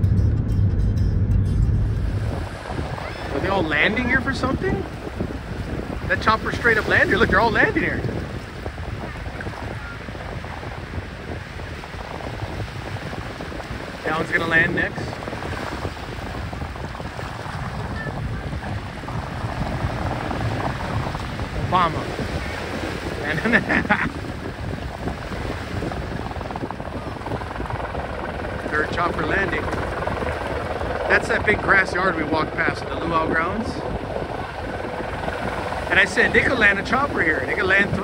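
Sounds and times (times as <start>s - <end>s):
helicopter rotor chopping: 0.0s - 38.0s
wind buffeting microphone: 0.0s - 38.0s.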